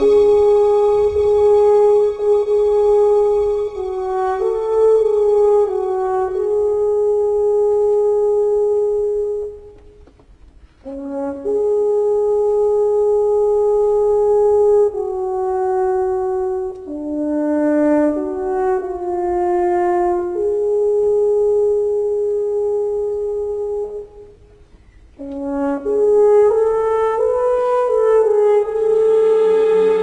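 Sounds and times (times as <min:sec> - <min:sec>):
orchestra holding a note: 0:00.0 - 0:09.7, 0:25.2 - 0:30.0
french horn holding a long note: 0:00.0 - 0:10.1, 0:10.7 - 0:30.0.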